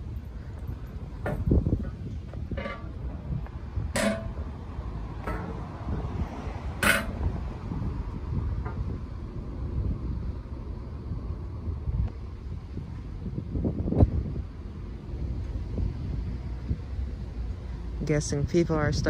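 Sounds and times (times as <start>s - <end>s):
wind rumbling on microphone: 0.0s - 19.0s.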